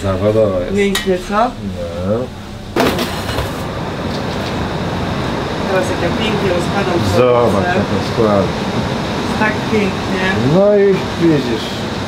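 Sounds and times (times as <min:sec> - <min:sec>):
commercial kitchen hum: 0:00.0 - 0:12.0.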